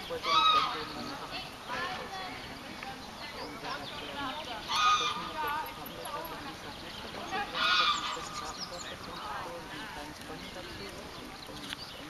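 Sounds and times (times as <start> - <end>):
faint background voices: 0.0 - 12.0
loud honking animal calls: 4.7 - 5.4, 7.3 - 8.4.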